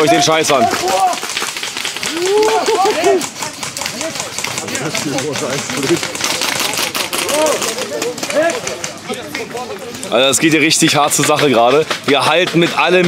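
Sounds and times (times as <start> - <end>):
players shouting: 0.0 - 12.7.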